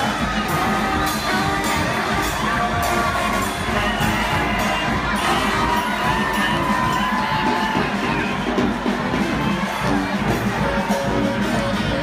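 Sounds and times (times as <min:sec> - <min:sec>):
crowd cheering and shouting: 0:00.0 - 0:12.0
parade music: 0:00.0 - 0:12.0.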